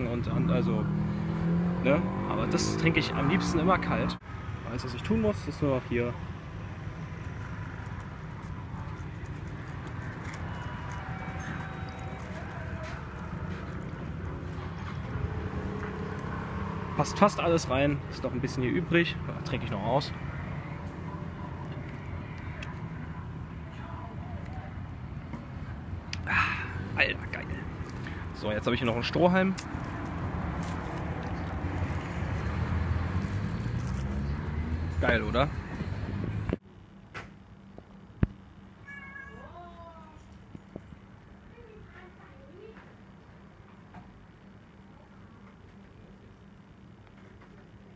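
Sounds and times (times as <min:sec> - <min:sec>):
low engine-like hum: 0:00.0 - 0:47.9
low urban rumble: 0:00.0 - 0:47.9.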